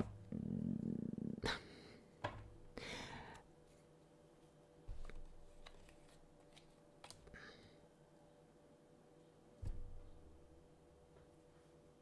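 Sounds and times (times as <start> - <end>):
cards sliding rustle: 4.9 - 7.2.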